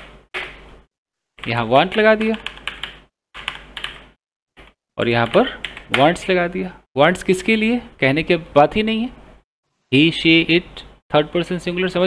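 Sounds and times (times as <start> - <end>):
computer keyboard typing: 1.4 - 6.3.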